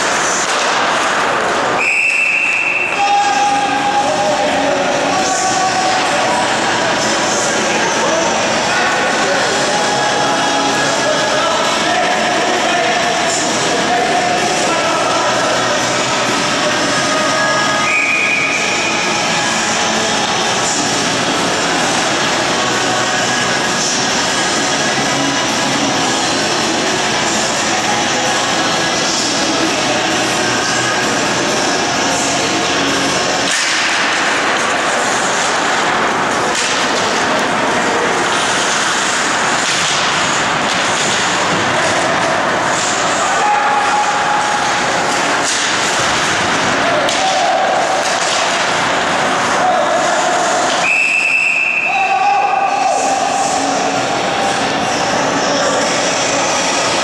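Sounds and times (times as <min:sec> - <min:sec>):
skates and sticks scraping ice: 0:00.0 - 0:24.1, 0:32.4 - 0:50.9
faint music: 0:00.0 - 0:57.0
ice rink ambience: 0:00.0 - 0:57.0.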